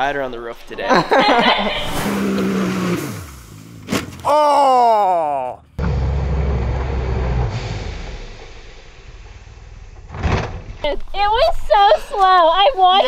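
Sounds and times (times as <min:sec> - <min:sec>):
person crying out: 0:04.2 - 0:05.6
low steady rumble: 0:05.8 - 0:13.0.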